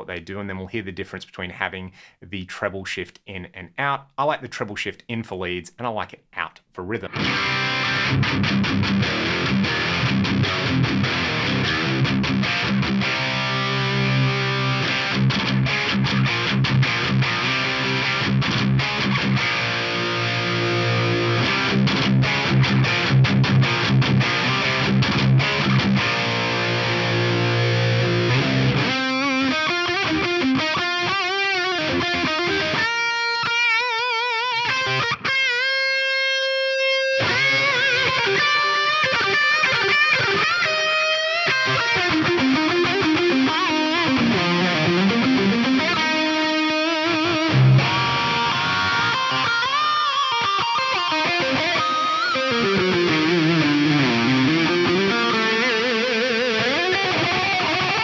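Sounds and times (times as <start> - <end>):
distorted electric guitar: 7.0 - 58.0.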